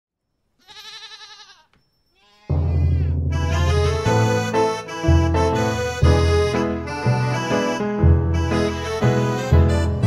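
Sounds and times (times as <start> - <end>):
sheep bleating: 0.6 - 4.0.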